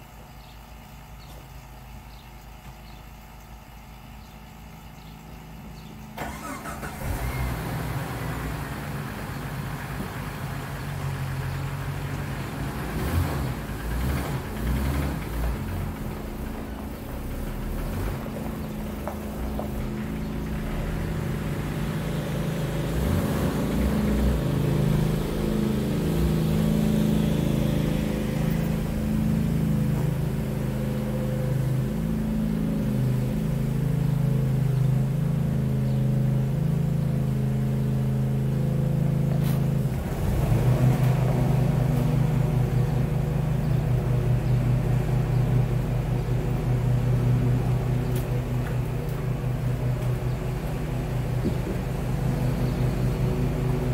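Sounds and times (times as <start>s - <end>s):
car engine idling: 0.0s - 53.9s.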